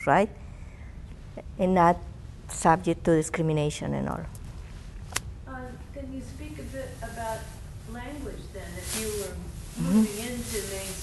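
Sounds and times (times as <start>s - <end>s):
low background hiss: 0.0s - 11.0s.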